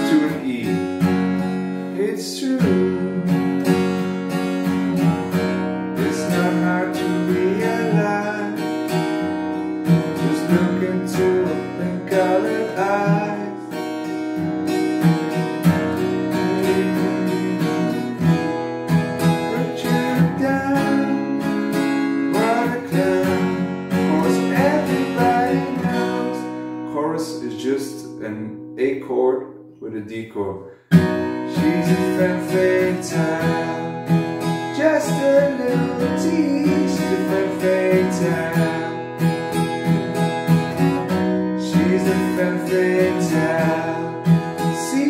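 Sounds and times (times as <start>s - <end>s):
acoustic guitar strumming chords: 0.0s - 45.0s.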